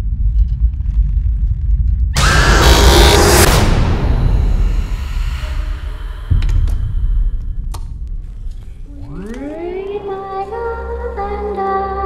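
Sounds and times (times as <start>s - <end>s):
low rumble: 0.0s - 11.4s
phonograph tone rising in pitch: 2.2s - 7.7s, 8.8s - 11.7s.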